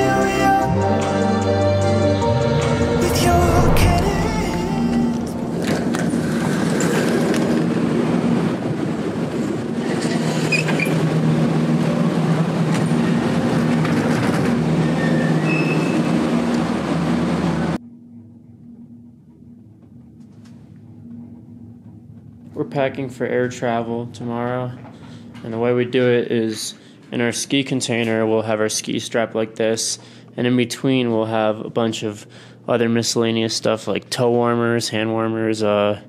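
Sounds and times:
cabin hum: 0:00.2 - 0:09.8
gondola mechanical rumble and rattle: 0:02.8 - 0:17.8
wheel squeaks: 0:09.8 - 0:11.1, 0:13.9 - 0:16.4.

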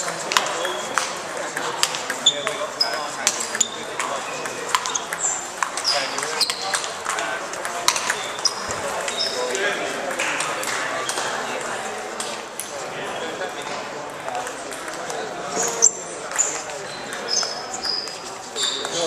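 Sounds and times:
table tennis balls clicking: 0:00.0 - 0:12.8, 0:13.4 - 0:19.0
murmur of voices: 0:00.0 - 0:19.0.

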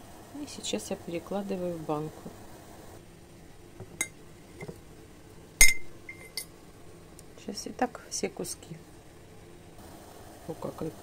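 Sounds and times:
fork clinking against glass jar: 0:05.6 - 0:06.5.

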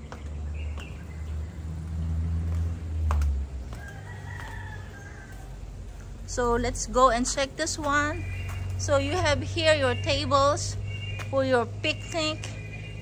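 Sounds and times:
rooster crowing: 0:03.6 - 0:05.8.

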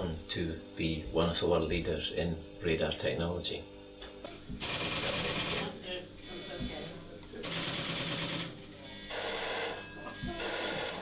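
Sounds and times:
electric telephone bell ringing: 0:09.0 - 0:11.0.

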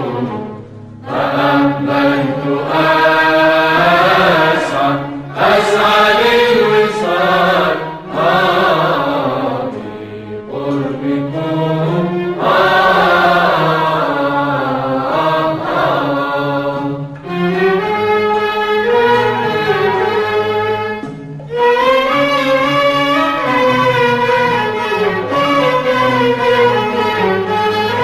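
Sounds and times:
ornamented singing: 0:00.0 - 0:18.0.

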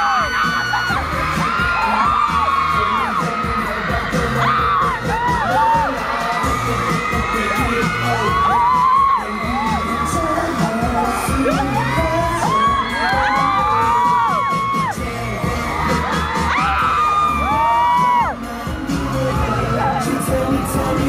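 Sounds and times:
fans screaming: 0:00.0 - 0:21.0
man singing into microphone: 0:00.0 - 0:21.0
pop song over sound system: 0:00.0 - 0:21.0.

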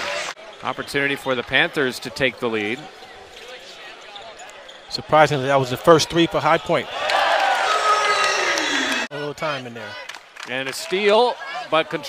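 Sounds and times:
crowd murmur: 0:07.5 - 0:09.1.

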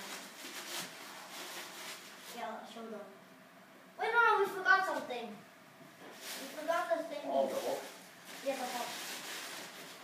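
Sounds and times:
plastic wrap crinkling: 0:00.0 - 0:02.4, 0:06.1 - 0:10.0.

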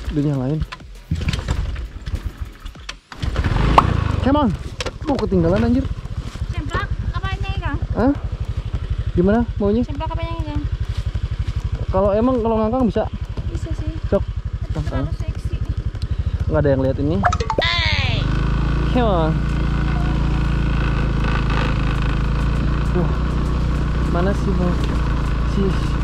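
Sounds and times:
scooter engine running: 0:00.0 - 0:26.0
scooter engine starting: 0:00.1 - 0:06.2.

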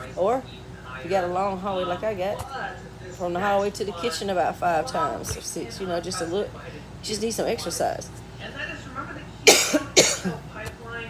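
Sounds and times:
woman coughing: 0:09.4 - 0:10.4.

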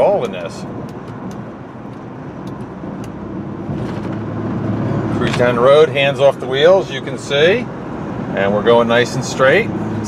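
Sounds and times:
car road noise hum: 0:00.0 - 0:10.0.

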